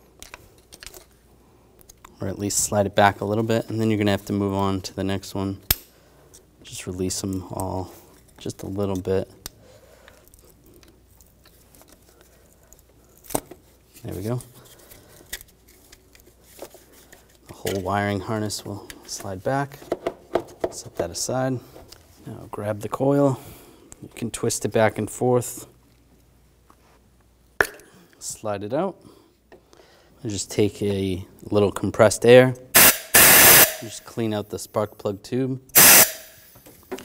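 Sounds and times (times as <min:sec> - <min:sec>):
plastic connectors being handled: 0:00.1 - 0:01.2, 0:07.3 - 0:18.0.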